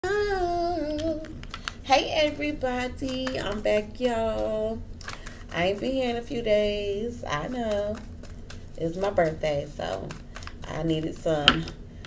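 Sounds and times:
woman humming: 0:00.0 - 0:01.4.

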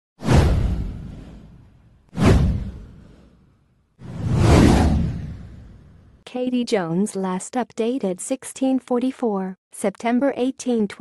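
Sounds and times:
whoosh sound effects: 0:00.2 - 0:06.2.

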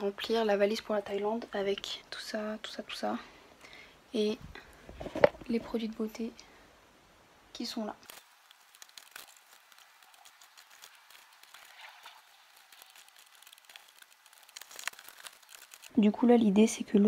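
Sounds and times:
clothes rustling: 0:08.0 - 0:15.9.

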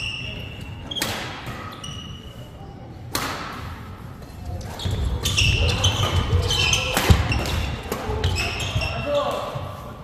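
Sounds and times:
shoes squeaking: 0:00.0 - 0:02.6, 0:04.2 - 0:09.6.

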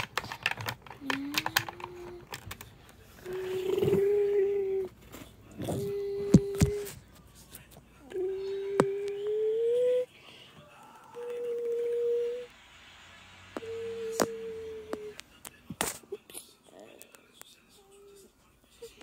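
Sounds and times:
plastic toy clicks: 0:00.0 - 0:02.7
child humming: 0:01.0 - 0:02.3, 0:03.2 - 0:04.9, 0:05.6 - 0:06.9, 0:08.1 - 0:10.1, 0:11.0 - 0:12.5, 0:13.6 - 0:15.2.

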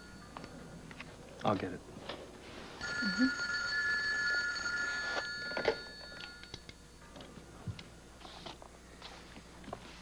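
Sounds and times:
telephone ringing: 0:02.8 - 0:06.8.

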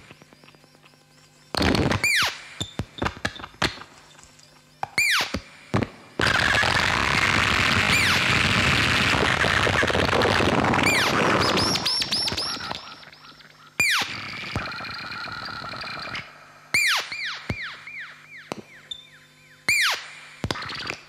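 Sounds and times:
crackling synthesizer noise: 0:00.0 - 0:21.0
falling electronic zaps: 0:01.5 - 0:03.9, 0:05.0 - 0:13.2, 0:13.8 - 0:18.7, 0:19.7 - 0:21.0
quick falling electronic chirps: 0:10.2 - 0:19.1.

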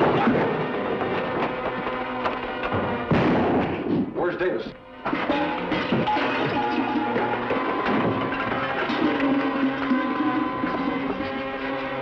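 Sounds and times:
dramatic background music: 0:00.0 - 0:04.1, 0:04.8 - 0:12.0.

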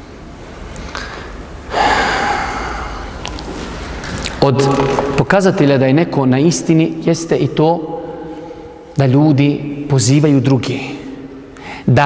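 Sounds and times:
room noise: 0:00.0 - 0:12.0
man breathing into microphone: 0:01.7 - 0:03.3, 0:11.6 - 0:11.9.

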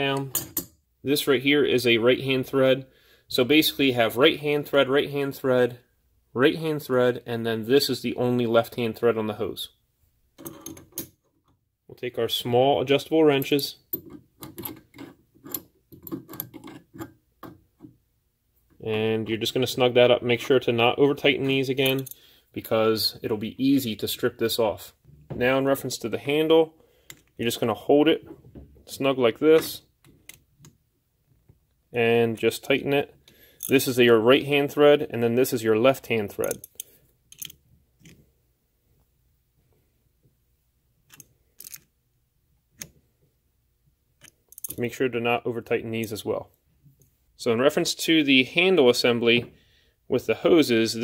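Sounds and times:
wrench scraping on metal: 0:14.0 - 0:17.2
wrench clicking on metal: 0:36.4 - 0:38.2, 0:41.1 - 0:41.8, 0:44.2 - 0:44.8.

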